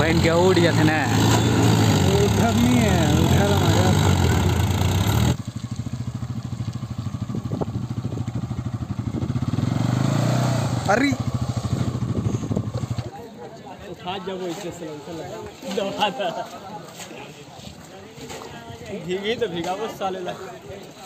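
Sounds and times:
voices calling: 0:00.0 - 0:05.4
tractor engine running: 0:00.0 - 0:10.3
motorcycle engine running: 0:00.0 - 0:13.1.

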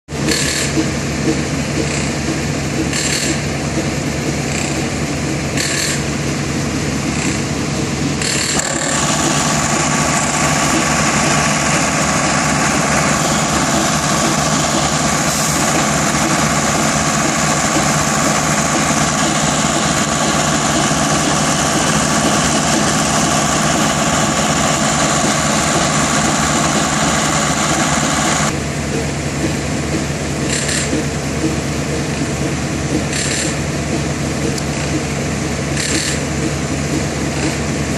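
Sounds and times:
concrete pump running: 0:00.1 - 0:37.9
steady whine: 0:00.2 - 0:37.9.

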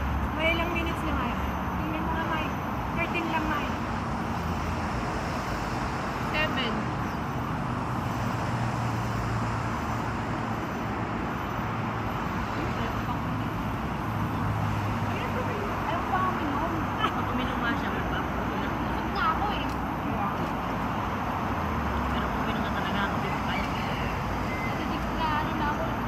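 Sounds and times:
city traffic rumble: 0:00.0 - 0:26.0
faint indistinct conversation: 0:12.3 - 0:26.0.

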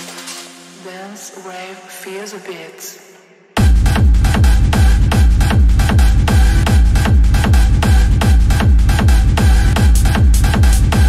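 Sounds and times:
steady synth layer: 0:00.0 - 0:11.0
distorted kick drum pounding: 0:03.6 - 0:11.0.

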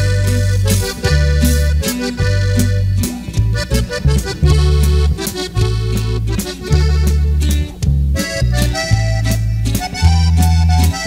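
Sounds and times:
accordion melody: 0:00.0 - 0:11.0
deep steady bass line: 0:00.0 - 0:11.0.

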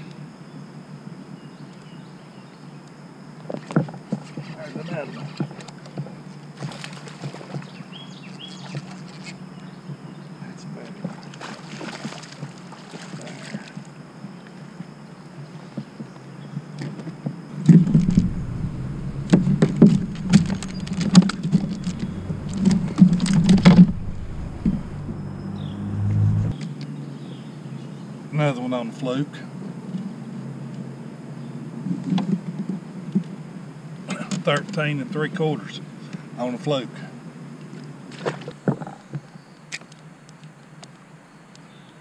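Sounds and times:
steady low hum: 0:17.7 - 0:26.6
faint clicks: 0:17.9 - 0:25.1.

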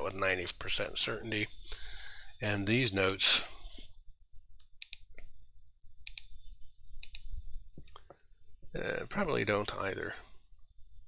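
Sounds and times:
computer mouse clicks: 0:04.4 - 0:08.2.

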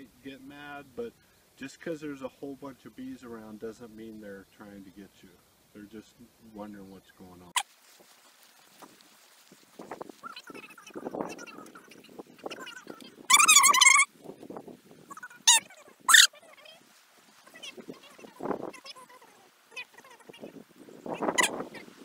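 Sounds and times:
animal crying: 0:10.2 - 0:14.1, 0:15.1 - 0:16.8, 0:17.4 - 0:20.6, 0:21.2 - 0:21.9.

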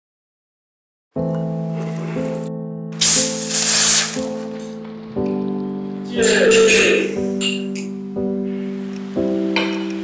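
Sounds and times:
background music of held chords: 0:01.2 - 0:10.0
carbonated bottle hissing open: 0:03.0 - 0:04.4.

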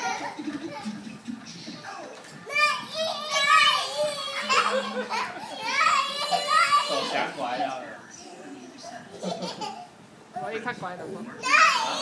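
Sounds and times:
children shouting in play: 0:02.4 - 0:07.5, 0:11.4 - 0:12.0.

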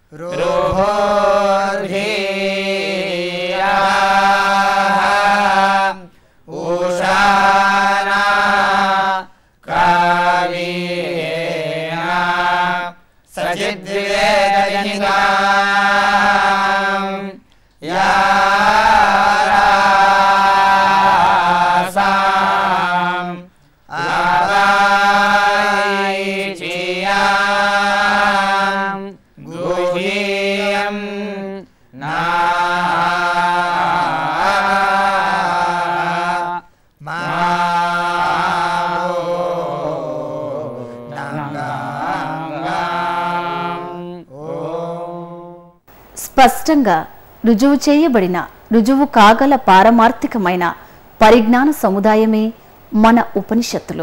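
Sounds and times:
men chanting verses together: 0:00.1 - 0:45.8.

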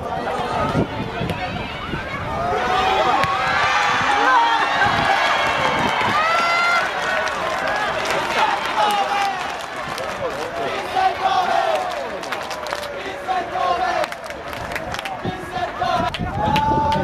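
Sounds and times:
many voices shouting: 0:00.0 - 0:17.0.

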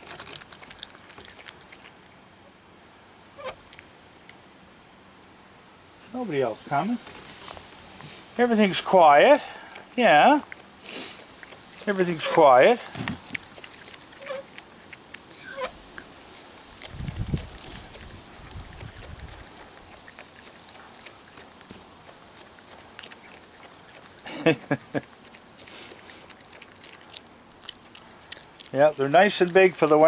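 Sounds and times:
raccoon chewing with jaw smacks: 0:00.0 - 0:02.5, 0:03.4 - 0:04.4, 0:07.1 - 0:30.0.

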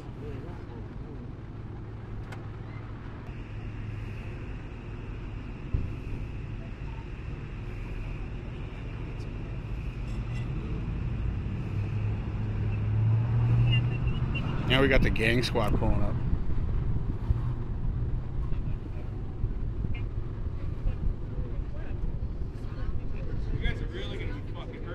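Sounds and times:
vehicle engines idling: 0:00.0 - 0:24.9.

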